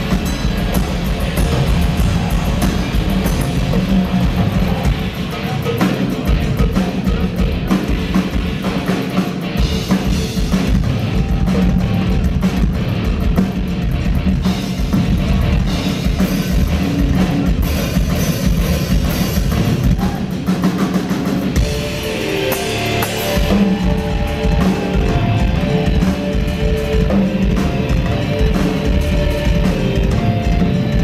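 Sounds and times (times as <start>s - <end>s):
fast drum solo with cymbals: 0.0s - 31.0s
sustained pitched notes: 21.6s - 31.0s.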